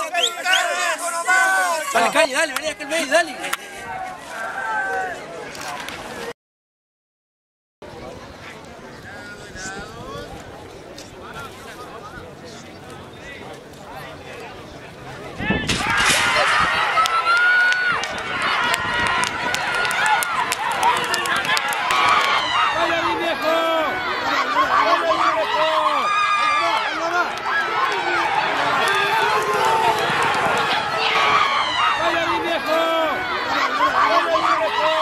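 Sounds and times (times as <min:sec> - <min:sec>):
spectators shouting: 0:00.0 - 0:05.3, 0:15.4 - 0:35.0.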